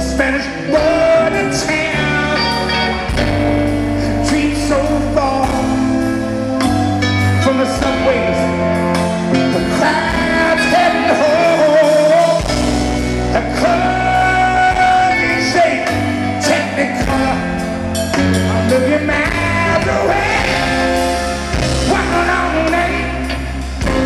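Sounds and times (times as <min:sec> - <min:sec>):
live rock band playing: 0:00.0 - 0:24.0
male lead vocal: 0:00.0 - 0:24.0.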